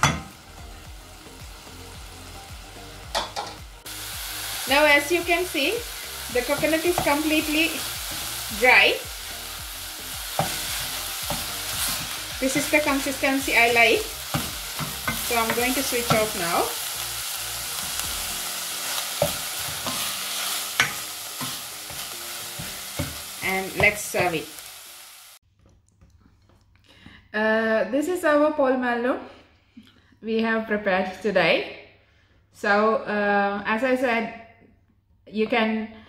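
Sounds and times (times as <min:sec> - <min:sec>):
light dry sizzle: 0:03.8 - 0:25.4.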